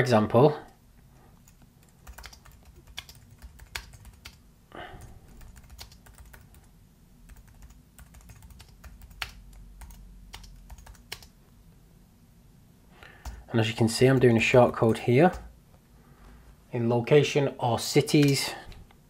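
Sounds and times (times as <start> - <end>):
computer keyboard typing: 1.4 - 4.4, 5.0 - 6.7, 7.3 - 11.4, 18.2 - 18.4.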